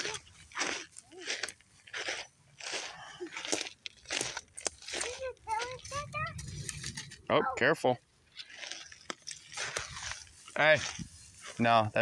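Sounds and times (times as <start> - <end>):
footsteps crunching on dry grass: 0.0 - 7.2, 8.3 - 12.0.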